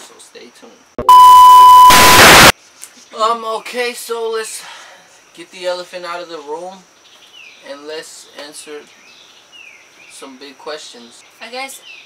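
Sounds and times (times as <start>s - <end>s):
test tone beep: 1.0s - 2.5s
tv static hiss: 1.0s - 2.5s.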